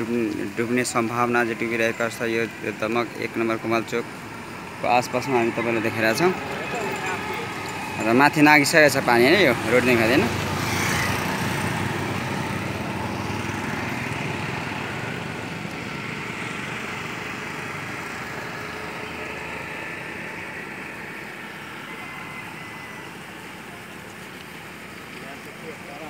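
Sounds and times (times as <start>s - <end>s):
motorcycle engine passing: 4.7s - 25.3s.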